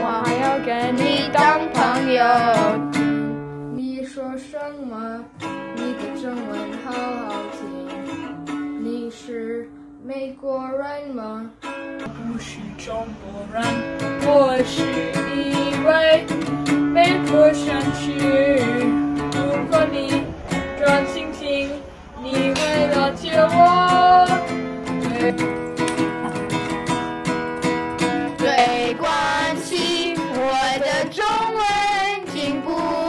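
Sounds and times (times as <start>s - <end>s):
strummed acoustic guitar: 0.0s - 4.3s, 5.1s - 10.0s, 11.0s - 33.0s
child singing: 0.0s - 25.5s, 28.4s - 33.0s.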